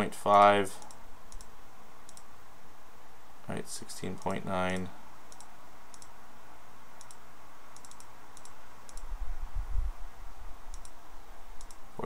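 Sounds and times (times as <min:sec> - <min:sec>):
computer mouse clicks: 0:00.8 - 0:02.3, 0:04.1 - 0:06.1, 0:07.0 - 0:07.2, 0:07.8 - 0:09.1, 0:10.7 - 0:11.0, 0:11.6 - 0:11.8.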